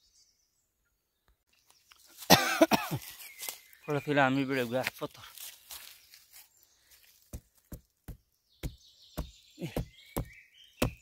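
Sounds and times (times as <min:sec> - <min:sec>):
person coughing: 0:02.3 - 0:03.0.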